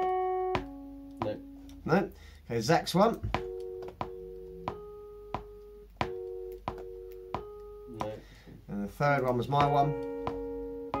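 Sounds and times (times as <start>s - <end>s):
electric piano chords: 0.0s - 2.0s, 2.9s - 11.0s.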